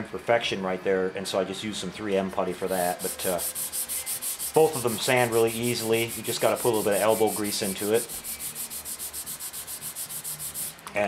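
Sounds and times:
sandpaper rubbing on plastic: 2.6s - 10.8s.

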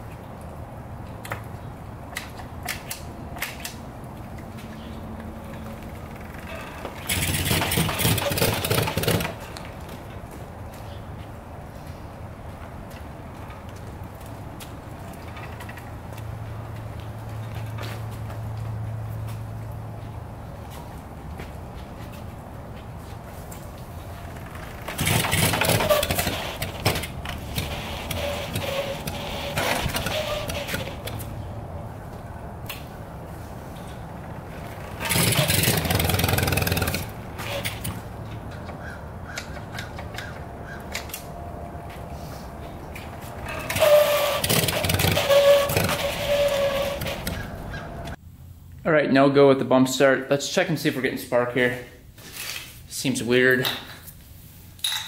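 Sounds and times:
motorcycle engine turning over: 5.5s - 9.8s, 24.1s - 31.4s, 34.2s - 38.9s, 43.2s - 48.2s.

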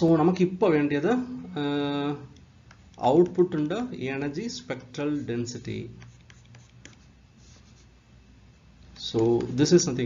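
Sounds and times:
low steady hum: 0.0s - 10.0s
stylus scratching on tablet: 2.8s - 3.9s, 4.6s - 7.9s.

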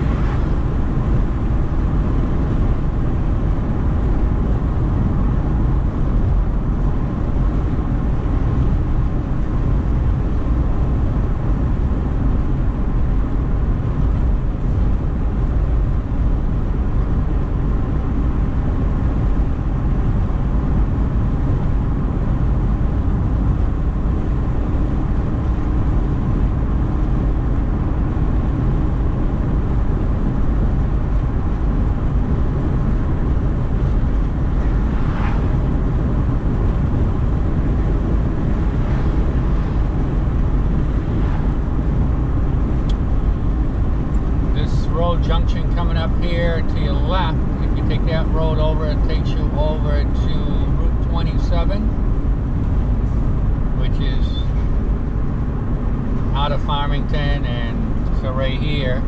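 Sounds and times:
car interior road rumble: 0.0s - 59.0s.

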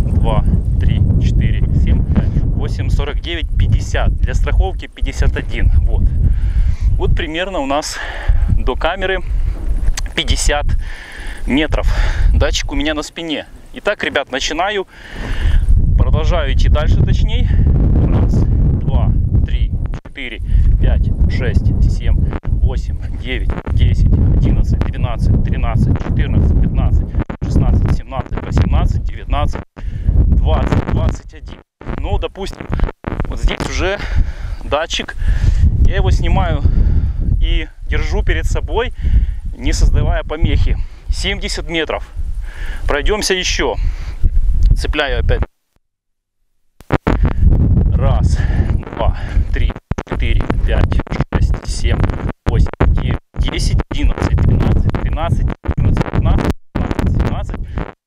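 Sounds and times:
man's voice: 0.0s - 6.1s, 7.0s - 9.3s, 16.0s - 29.7s, 30.3s - 35.2s, 35.8s - 42.1s, 44.7s - 45.5s, 47.9s - 57.9s
wind buffeting microphone: 0.0s - 13.7s, 15.0s - 45.5s, 46.8s - 58.0s.

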